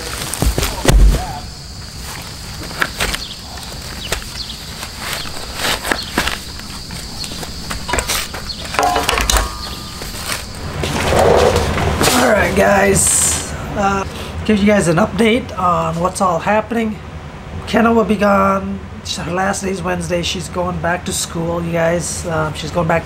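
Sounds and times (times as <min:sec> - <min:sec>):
heavy slab thud: 0:00.3 - 0:01.4
spade scraping in soil: 0:09.5 - 0:12.2.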